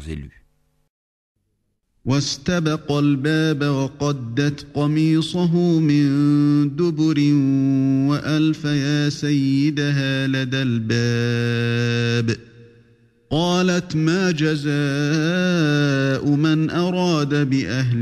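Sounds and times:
man chanting melodic recitation: 0:00.0 - 0:00.4, 0:02.1 - 0:12.4, 0:13.3 - 0:18.0.

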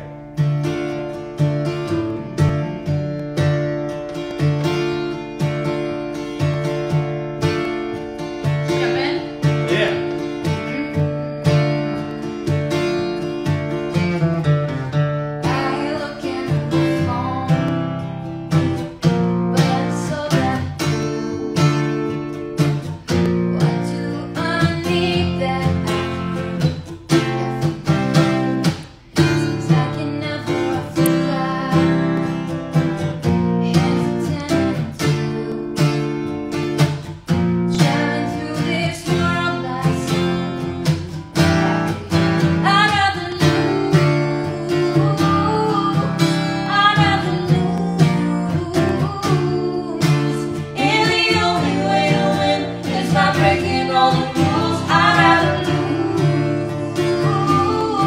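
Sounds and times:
acoustic guitar strumming: 0:00.0 - 0:58.0
woman singing: 0:15.3 - 0:36.5, 0:37.6 - 0:58.0.

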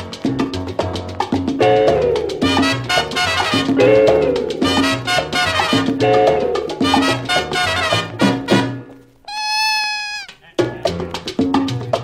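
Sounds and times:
mambo band playing: 0:01.5 - 0:11.0
held high note: 0:09.3 - 0:10.3.

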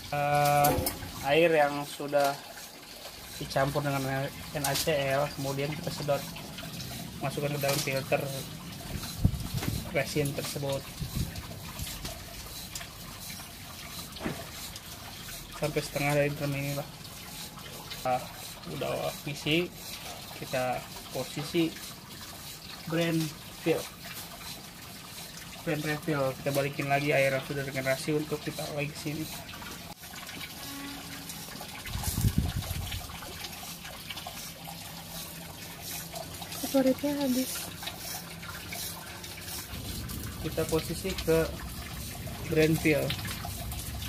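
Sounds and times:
brine hissing through filter tank: 0:00.0 - 0:44.0
water trickling: 0:00.0 - 0:44.0.

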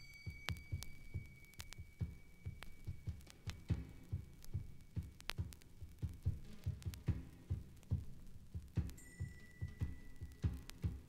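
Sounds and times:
sharp high clicks: 0:00.0 - 0:11.0
steady low drum beat: 0:00.0 - 0:11.0.

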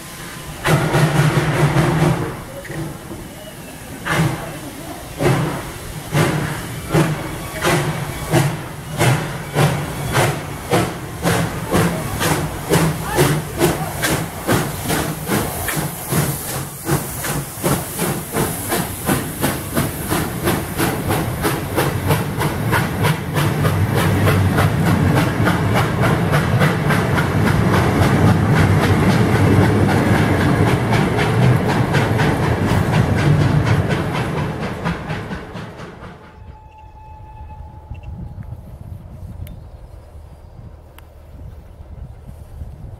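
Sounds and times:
hissing steam: 0:00.0 - 0:36.4
rumble of train wheels: 0:00.0 - 0:42.9
steam locomotive exhaust chuffs: 0:00.0 - 0:42.9.

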